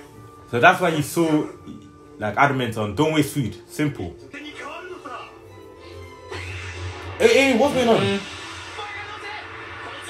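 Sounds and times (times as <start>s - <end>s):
background music: 0.0s - 10.0s
character speaking: 7.2s - 8.3s.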